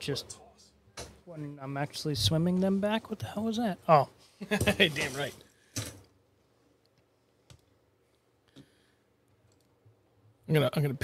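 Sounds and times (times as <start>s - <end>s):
computer mouse clicks: 6.8s - 7.8s, 9.4s - 9.8s.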